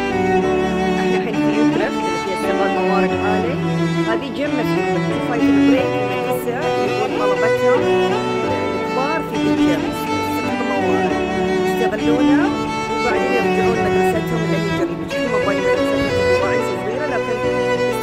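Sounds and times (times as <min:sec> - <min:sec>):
string ensemble playing: 0:00.0 - 0:18.0.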